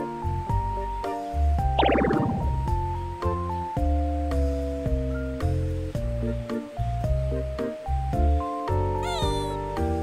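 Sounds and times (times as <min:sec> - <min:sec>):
background music of held notes: 0:00.0 - 0:10.0
kitten meowing: 0:09.0 - 0:09.7.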